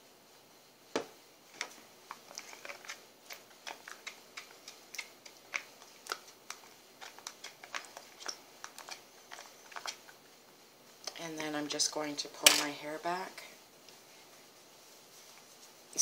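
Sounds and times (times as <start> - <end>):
spoon clicking and scraping bowl: 1.6 - 10.1.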